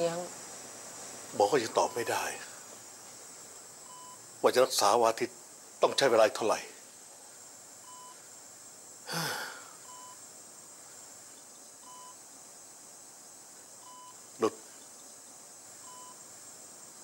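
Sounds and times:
patient monitor beeping: 0:01.7 - 0:02.3, 0:03.8 - 0:04.2, 0:07.9 - 0:08.2, 0:09.8 - 0:10.2, 0:11.8 - 0:12.2, 0:13.8 - 0:14.2, 0:15.8 - 0:16.2.

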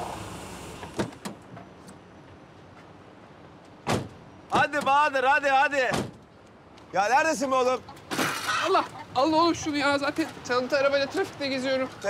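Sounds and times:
quiet street background: 0:00.0 - 0:12.0.

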